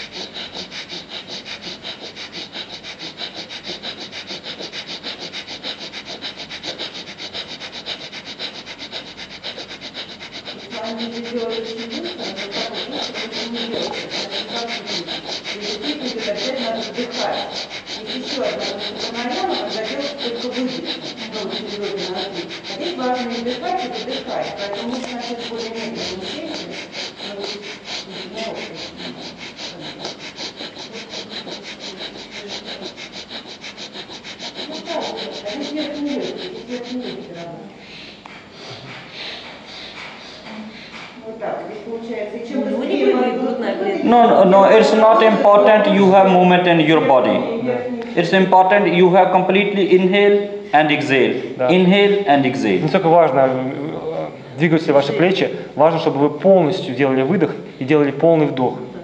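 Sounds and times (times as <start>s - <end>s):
rapid breathing through nose: 0.0s - 58.4s.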